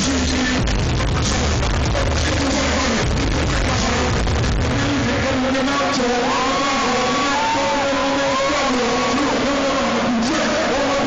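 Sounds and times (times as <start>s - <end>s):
live hip-hop through pa: 0.0s - 11.0s.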